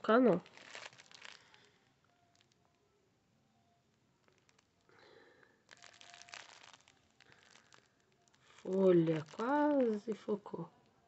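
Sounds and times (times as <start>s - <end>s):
plastic film crinkling: 0.0s - 2.6s, 4.2s - 10.6s.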